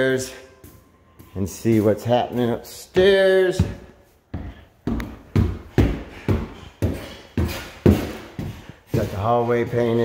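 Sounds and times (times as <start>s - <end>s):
footsteps on indoor stairs: 0.0s - 10.0s.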